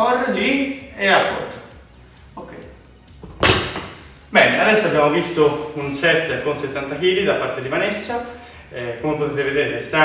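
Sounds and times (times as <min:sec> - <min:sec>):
barbell thud on rubber floor: 0:03.2 - 0:04.0.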